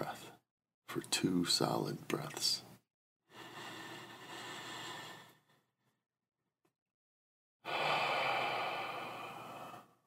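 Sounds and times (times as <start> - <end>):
person exhaling slowly: 7.7 - 10.0.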